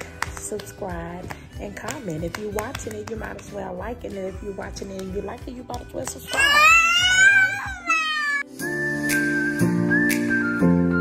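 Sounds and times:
woman squealing: 6.3s - 8.5s
soft music with whistle-like melody: 8.5s - 11.0s.

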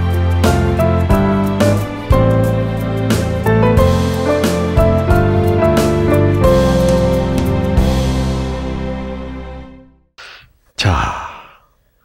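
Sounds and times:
man sighing: 10.2s - 11.9s.

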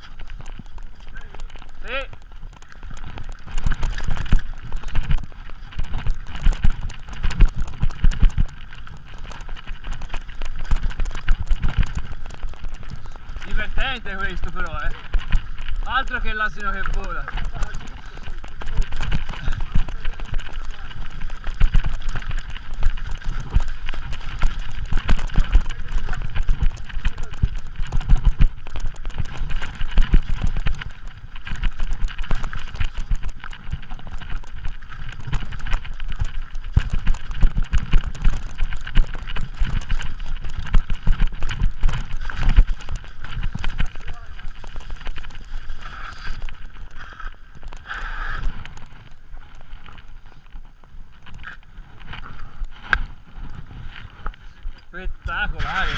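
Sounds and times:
mountain bike rattling over rocks: 0.0s - 55.9s.

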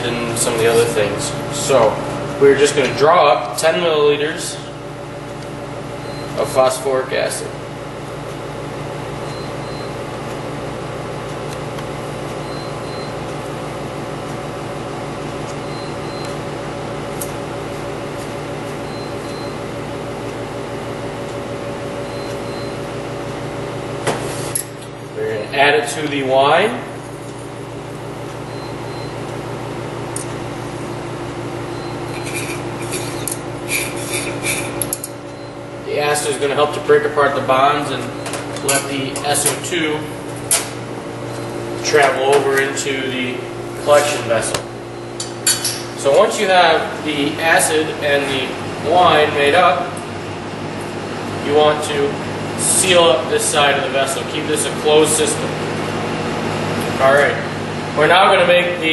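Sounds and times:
steady low hum: 0.0s - 58.9s.

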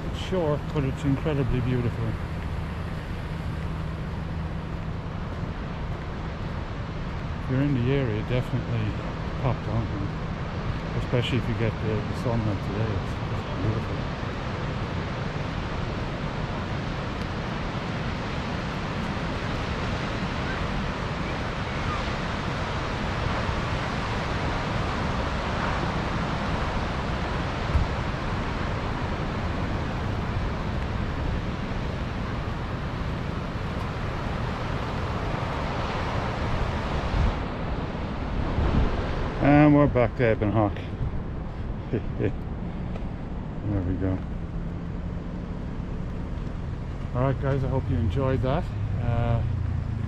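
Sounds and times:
ocean surf breaking: 0.0s - 50.0s
wind buffeting microphone: 14.0s - 47.1s.

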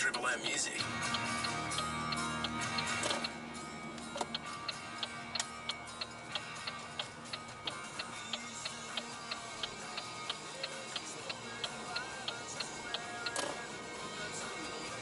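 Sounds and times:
rock music on car radio: 0.0s - 15.0s
steady sharp ticking: 0.0s - 15.0s.

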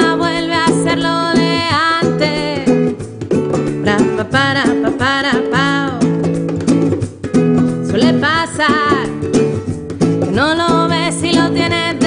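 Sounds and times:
woman singing: 0.0s - 6.4s, 7.4s - 12.0s
bongos: 0.0s - 12.0s
strummed classical guitar: 0.0s - 12.0s.

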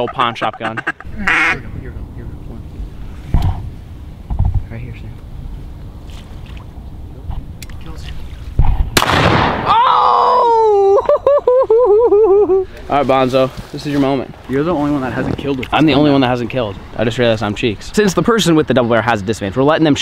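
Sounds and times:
duck call quacking: 0.0s - 1.7s.

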